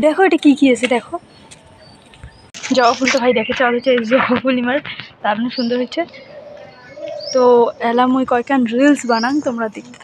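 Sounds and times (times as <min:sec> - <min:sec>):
woman talking: 0:00.0 - 0:01.2, 0:02.7 - 0:06.2, 0:07.3 - 0:10.0.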